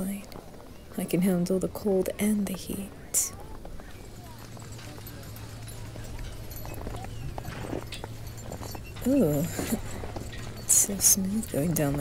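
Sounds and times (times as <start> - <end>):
constant low hum: 0.0 - 12.0
distant crowd voices: 0.0 - 12.0.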